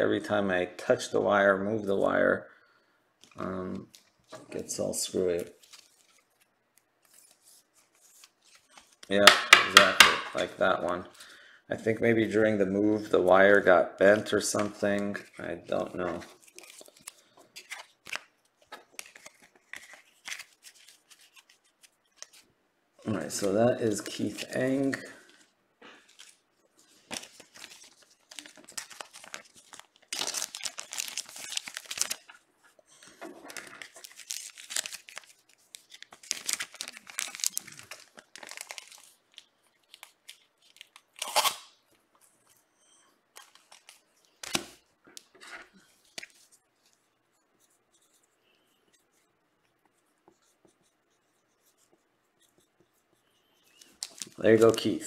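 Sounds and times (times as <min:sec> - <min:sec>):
packaging crinkling and tearing: 0:16.1 - 0:22.4, 0:27.0 - 0:32.4, 0:33.4 - 0:41.8, 0:43.4 - 0:45.3, 0:53.8 - 0:54.9.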